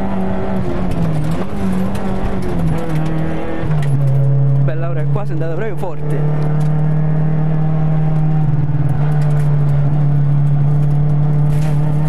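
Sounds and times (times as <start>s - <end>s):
rally car engine slowing: 0.0s - 12.0s.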